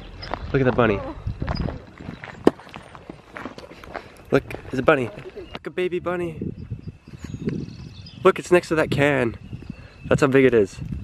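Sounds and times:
footsteps on gravel trail: 0.0 - 5.7.

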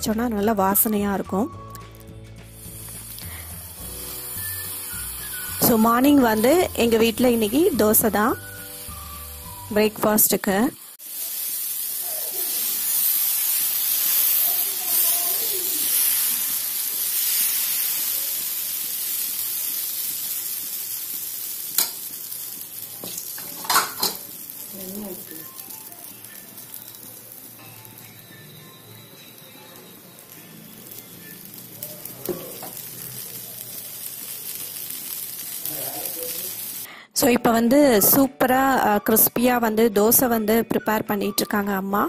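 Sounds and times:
batter sizzling on a hot pan: 0.0 - 36.9.

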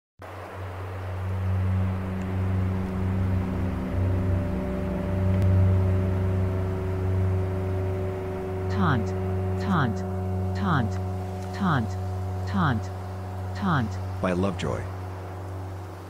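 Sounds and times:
low electrical hum: 0.2 - 16.0.

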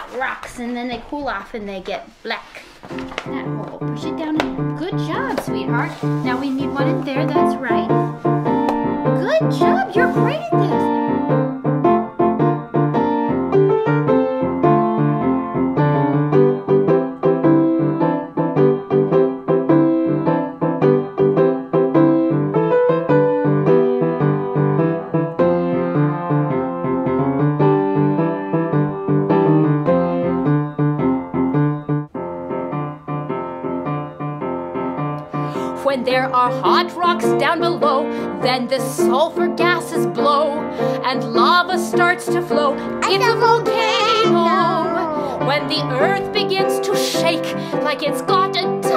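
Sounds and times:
piano music: 2.9 - 48.9.

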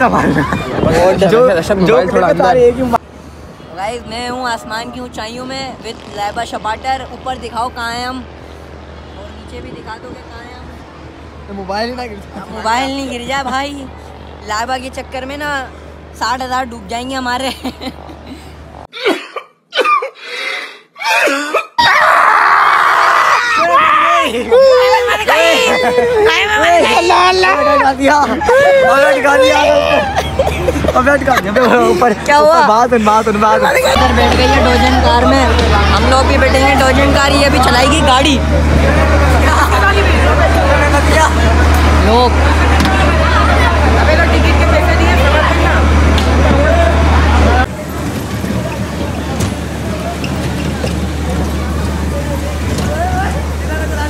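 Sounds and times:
crowd chatter: 23.5 - 54.0
loud steady rushing noise: 23.6 - 54.0
loud steady low hum: 25.1 - 54.0
man sobbing: 27.6 - 32.2.

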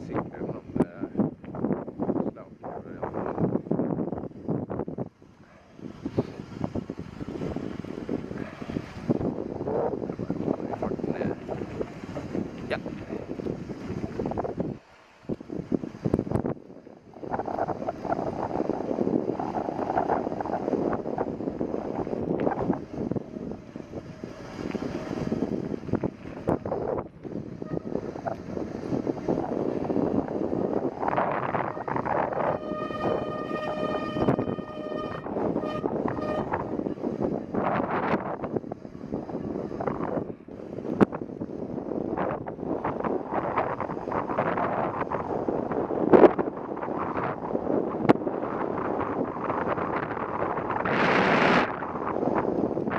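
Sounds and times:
wind on microphone: 0.0 - 52.9
bicycle tyres rolling on asphalt: 3.0 - 31.7, 36.8 - 50.9, 51.6 - 52.9.

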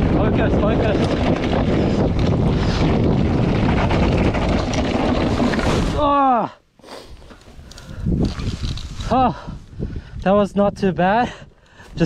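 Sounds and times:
bike frame rattling: 0.0 - 6.1, 7.4 - 9.5
wind rushing over microphone: 0.0 - 6.1, 7.1 - 12.0
tyres rumbling on dirt track: 0.0 - 6.4.

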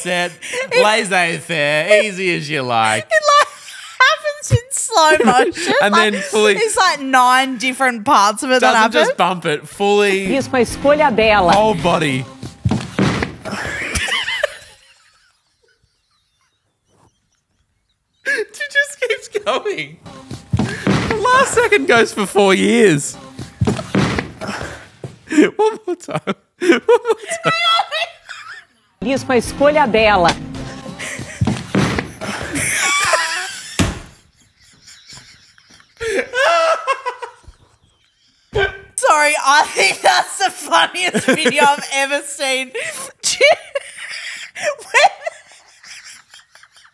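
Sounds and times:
people laughing: 0.2 - 1.4, 5.0 - 6.8, 13.4 - 18.5, 20.7 - 23.1, 23.7 - 28.9, 31.0 - 38.9, 39.5 - 42.1, 42.7 - 46.9
sharp knock: 12.7 - 13.8, 20.6 - 21.3, 23.6 - 24.8, 31.4 - 32.6.

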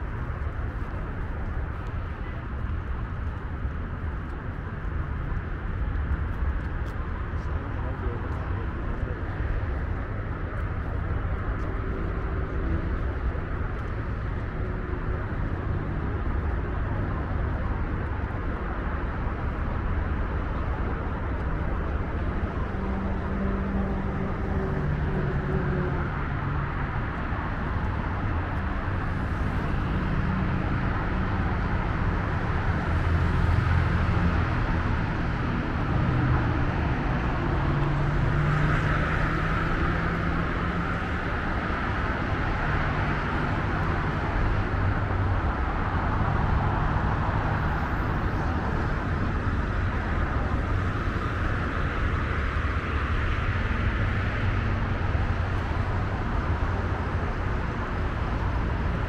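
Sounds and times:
low engine hum: 0.0 - 59.0.

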